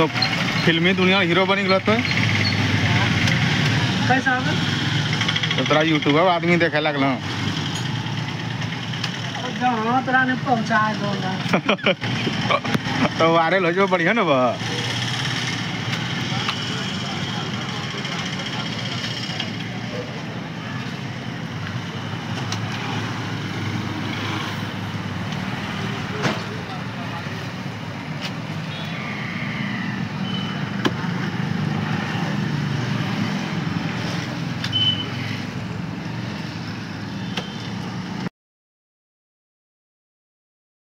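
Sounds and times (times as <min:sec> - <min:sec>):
vehicle traffic: 0:00.0 - 0:38.3
indistinct voices: 0:24.8 - 0:34.0.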